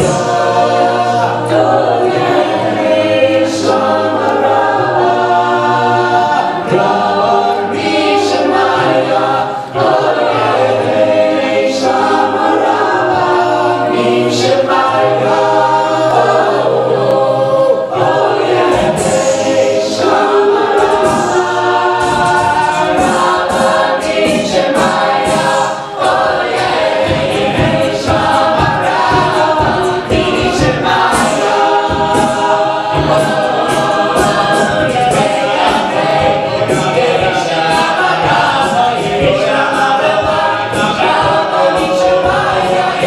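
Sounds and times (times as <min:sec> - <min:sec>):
a cappella group singing in harmony: 0:00.0 - 0:43.0
percussive beat: 0:00.0 - 0:43.0.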